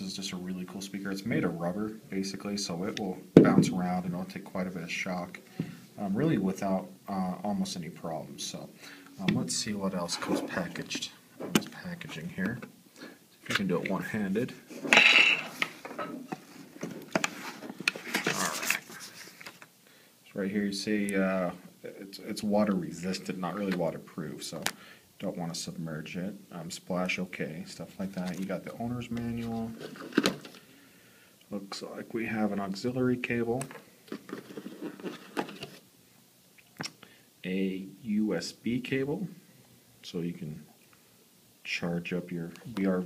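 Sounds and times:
packaging rustle: 0:16.6 - 0:19.7, 0:34.1 - 0:35.8
plastic tray scraping: 0:34.1 - 0:35.8.

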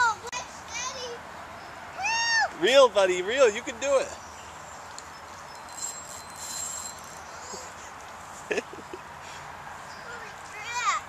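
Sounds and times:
outdoor background hiss: 0:00.0 - 0:11.0
fishing reel whirring: 0:05.6 - 0:07.6.

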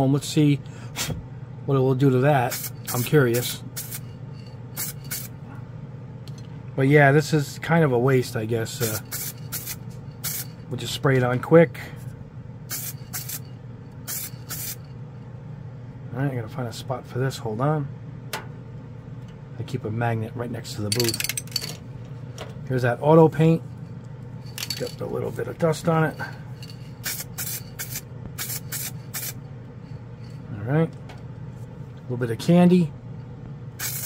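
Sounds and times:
steady low hum: 0:00.0 - 0:34.0
aerosol spray can hissing: 0:02.5 - 0:04.1, 0:04.8 - 0:05.3, 0:08.8 - 0:10.5, 0:12.7 - 0:13.5, 0:14.1 - 0:14.8, 0:27.0 - 0:29.4, 0:33.8 - 0:34.0.

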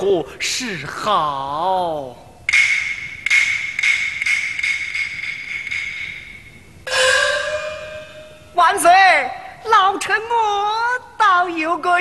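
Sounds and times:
high ringing metal tone: 0:02.5 - 0:08.8
sharp percussion strokes: 0:02.5 - 0:08.8
gong stroke: 0:05.0 - 0:08.6.

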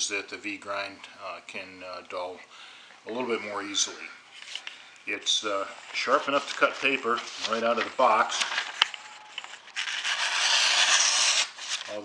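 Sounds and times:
knife slicing paper: 0:06.0 - 0:12.0.

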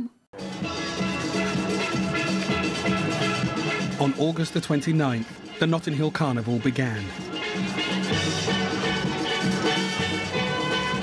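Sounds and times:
drums steady beat: 0:00.4 - 0:11.0
steel pans playing melody: 0:07.0 - 0:11.0.

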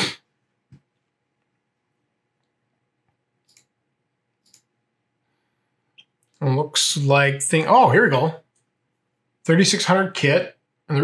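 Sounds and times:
computer mouse clicks: 0:02.4 - 0:03.8, 0:04.4 - 0:04.7.

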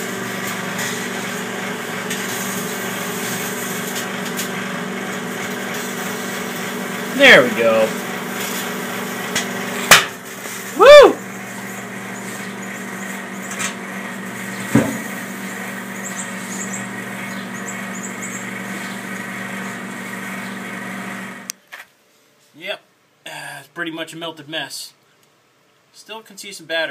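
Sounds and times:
microwave oven humming: 0:00.0 - 0:21.5
sharp crack: 0:09.3 - 0:10.8.

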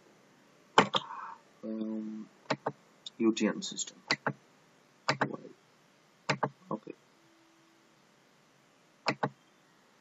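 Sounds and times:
faint steady hiss: 0:00.0 - 0:10.0
computer mouse clicks: 0:02.5 - 0:02.8, 0:04.1 - 0:04.4, 0:05.1 - 0:05.4, 0:06.3 - 0:06.6, 0:09.0 - 0:09.4.

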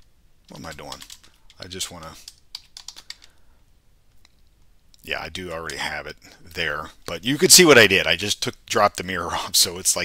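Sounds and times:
computer keyboard typing: 0:00.5 - 0:01.6, 0:02.2 - 0:03.4.

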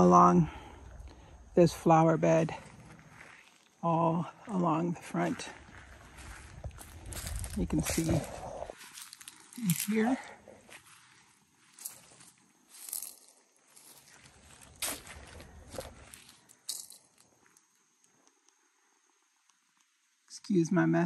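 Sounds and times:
footsteps on dry leaves: 0:02.4 - 0:17.4.

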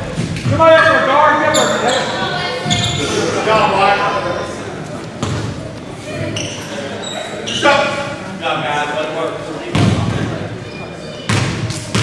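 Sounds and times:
shoe squeaks: 0:01.4 - 0:03.1, 0:06.1 - 0:08.0.

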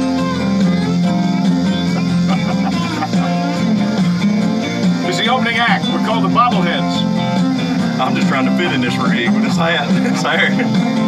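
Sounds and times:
country music with guitar: 0:00.0 - 0:11.0.

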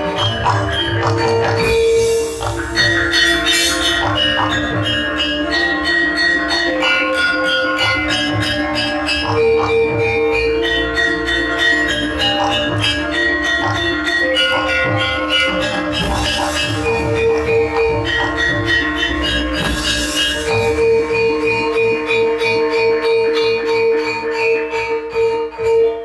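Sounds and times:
gamelan ensemble playing: 0:00.0 - 0:26.0.

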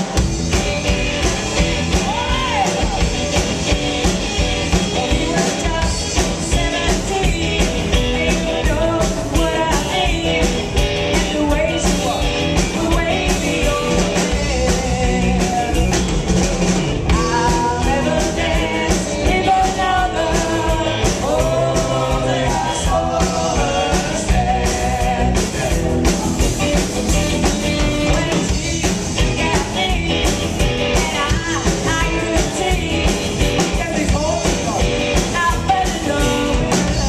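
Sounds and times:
drum kit: 0:00.0 - 0:37.0
live rock band playing: 0:00.0 - 0:37.0
woman singing: 0:05.0 - 0:16.0, 0:17.1 - 0:25.8, 0:28.0 - 0:34.4, 0:35.2 - 0:37.0.

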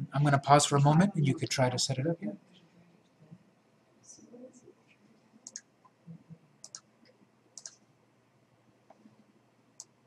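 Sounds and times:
computer mouse clicks: 0:05.4 - 0:05.7, 0:06.6 - 0:07.8, 0:09.8 - 0:10.0.

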